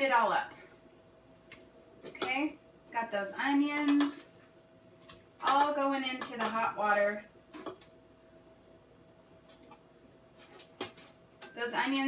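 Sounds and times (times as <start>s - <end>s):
faint steady hum: 0.0s - 12.0s
taps and scrapes: 10.4s - 11.2s.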